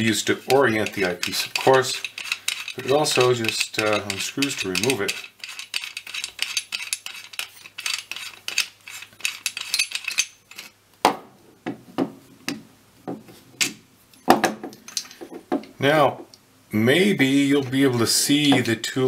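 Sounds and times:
eyepiece threads scraping clicks: 0.4 - 10.7
clicks and knocks of handling: 0.5 - 10.7.

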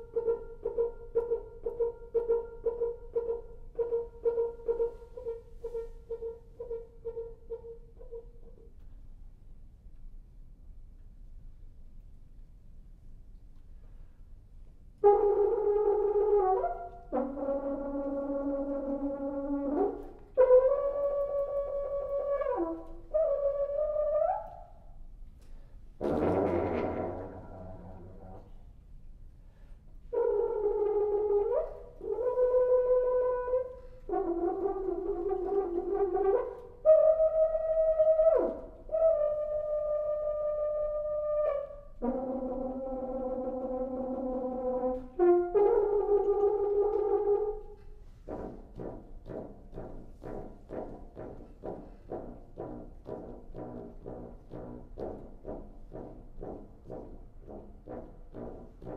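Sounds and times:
french horn held notes: 26.0 - 28.6.

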